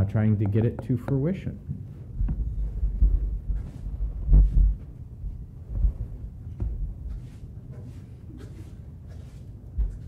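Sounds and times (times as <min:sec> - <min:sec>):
low thuds and handling noise: 0:01.7 - 0:10.0.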